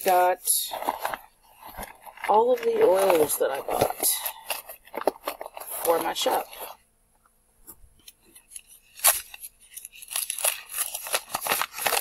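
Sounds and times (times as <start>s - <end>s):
newspaper crinkling and rustling: 0.0s - 6.8s, 8.0s - 12.0s
sharp paper crackle: 0.0s - 6.8s, 8.3s - 12.0s.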